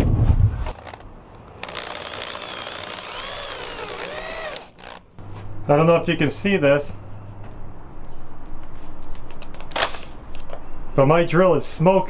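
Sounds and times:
electric drill motor humming: 1.6 - 5.2.

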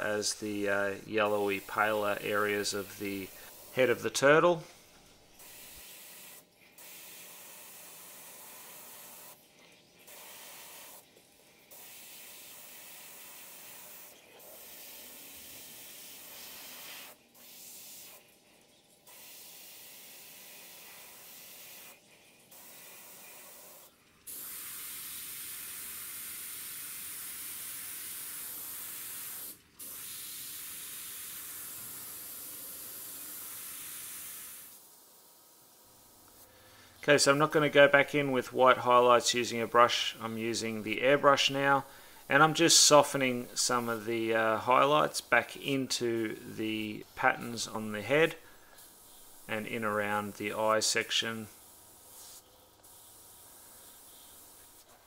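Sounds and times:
airbrush hissing: 0.0 - 9.4, 10.1 - 11.0, 11.7 - 18.2, 19.1 - 34.8, 39.8 - 55.0.

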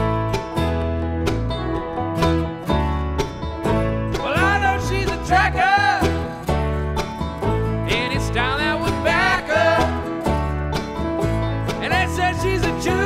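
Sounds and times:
bluegrass string band playing: 0.0 - 13.0.

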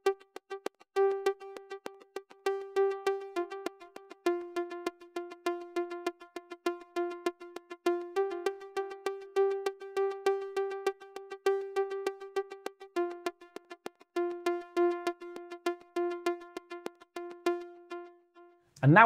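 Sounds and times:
synth pluck notes: 0.0 - 19.0.

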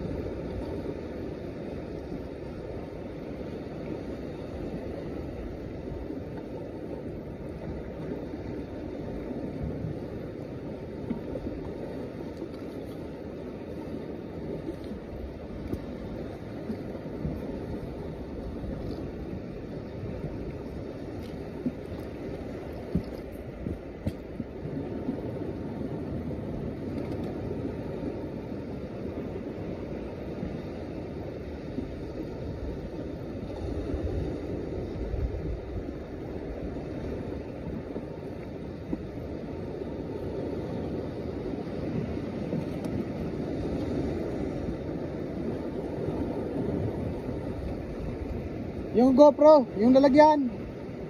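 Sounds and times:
sea waves on rocks: 0.0 - 51.0
wind: 0.0 - 51.0.

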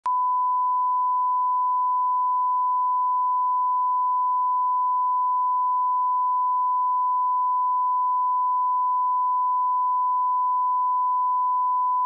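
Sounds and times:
steady pure test tone beep: 0.0 - 12.0.

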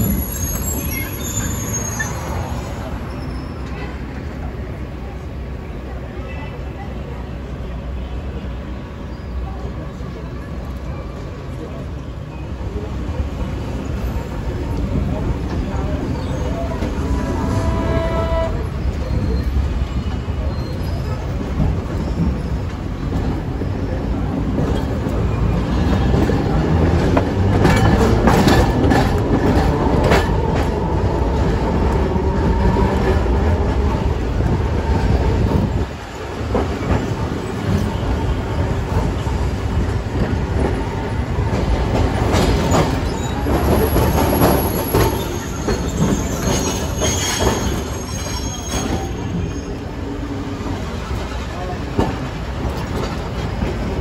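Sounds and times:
high-pitched wheel squeal: 0.0 - 3.9, 42.9 - 49.9
tram wheels rumbling on rails: 0.0 - 54.0.

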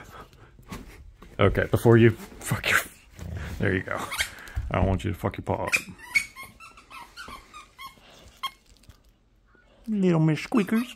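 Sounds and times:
dog whining and yipping: 5.8 - 8.7.

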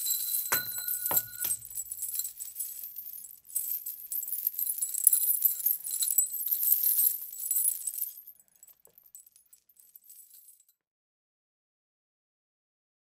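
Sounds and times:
metallic jingling and clinking: 0.0 - 10.8.

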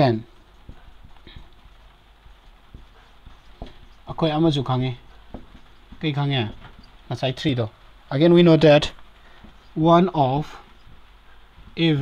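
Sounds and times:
marker writing on whiteboard: 0.0 - 7.1.

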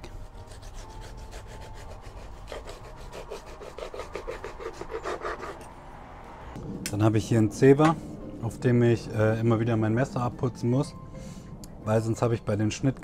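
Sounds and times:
knife sawing through cake: 0.3 - 5.7
knife scraping wooden board: 0.6 - 5.7.

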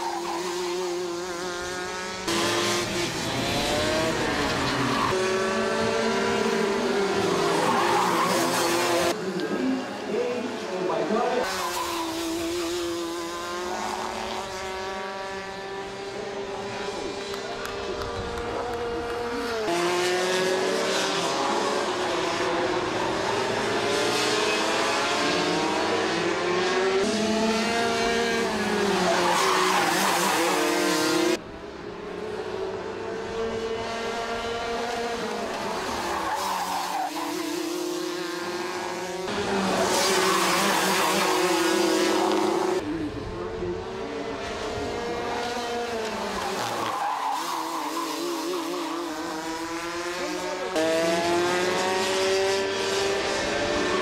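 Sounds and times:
racing kart engines revving: 0.0 - 54.0.

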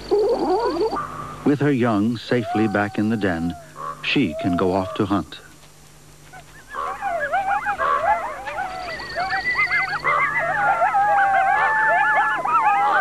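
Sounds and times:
coyotes yipping and howling: 0.0 - 5.4, 6.2 - 13.0.

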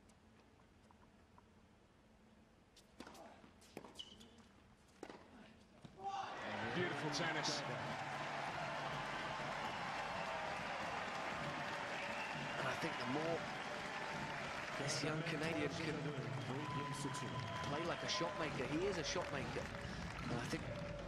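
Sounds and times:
crowd cheering and shouting: 6.0 - 21.0
crowd applause: 6.3 - 21.0.

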